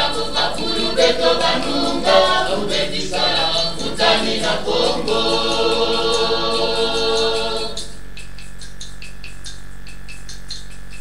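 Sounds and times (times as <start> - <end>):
hand rattle shaken rhythmically: 0.0 - 11.0.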